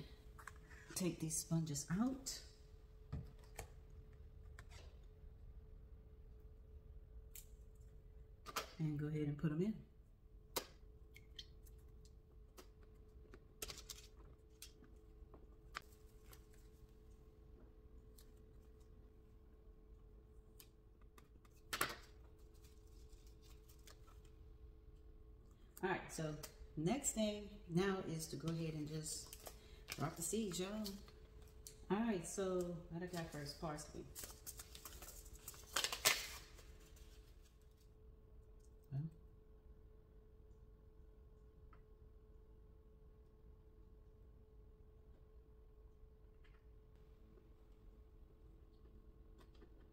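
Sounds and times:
faint hum: 0.0s - 49.9s
paper crinkling: 22.3s - 24.3s, 33.0s - 37.9s
paper packet rustling: 33.0s - 37.8s.

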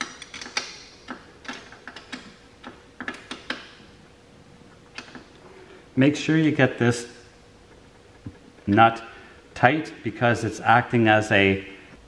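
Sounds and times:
wrench clicking: 0.0s - 3.8s.

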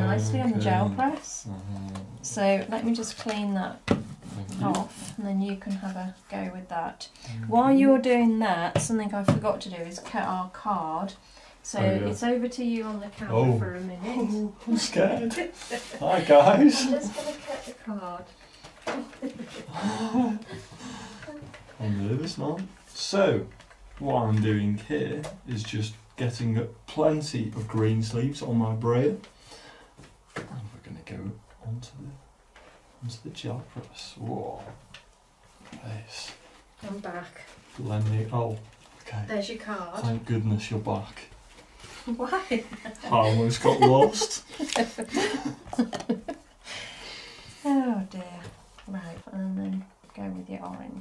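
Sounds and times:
people laughing: 19.0s - 20.7s, 42.9s - 46.5s.

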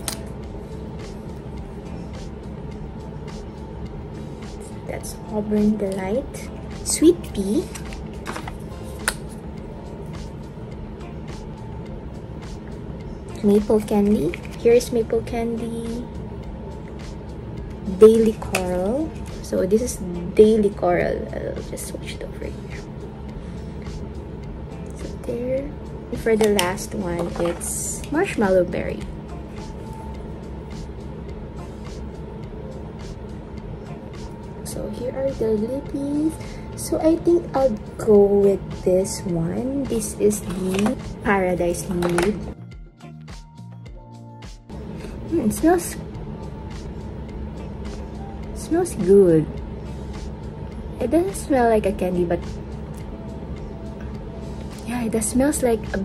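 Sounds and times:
steady low rumble: 0.0s - 42.9s, 43.5s - 56.0s
soft background music: 0.0s - 56.0s.

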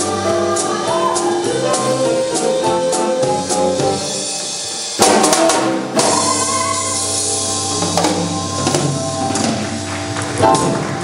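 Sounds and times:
jazz band playing: 0.0s - 11.0s
drum fill: 0.2s - 11.0s.

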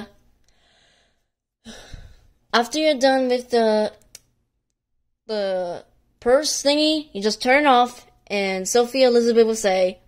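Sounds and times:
intake of breath: 0.5s - 2.4s.

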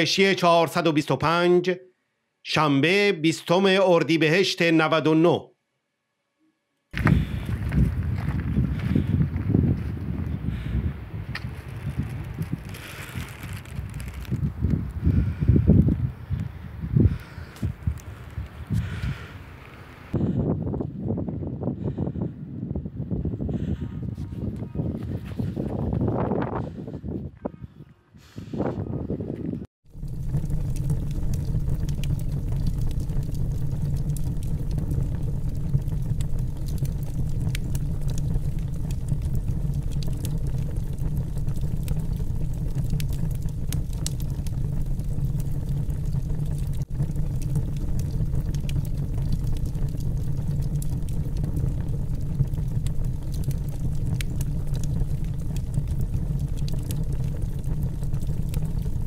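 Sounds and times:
fire rumbling and crackling: 6.9s - 27.2s, 29.3s - 59.0s.

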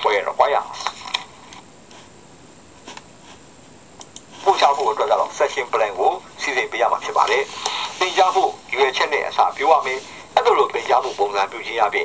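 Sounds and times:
person speaking through laptop speaker: 0.0s - 1.1s, 4.4s - 12.0s.

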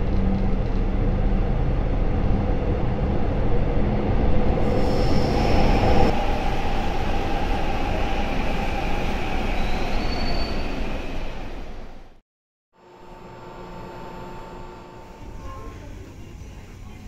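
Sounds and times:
subway train rumbling: 0.0s - 12.2s, 15.0s - 17.0s
high wheel squeals: 9.1s - 11.2s.

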